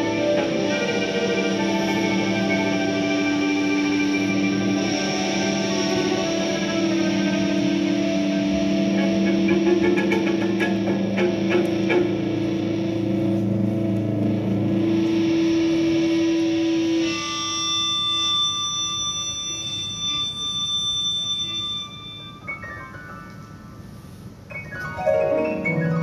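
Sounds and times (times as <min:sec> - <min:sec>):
live band music: 0:00.0 - 0:17.4
electric guitar with effects: 0:00.0 - 0:21.1.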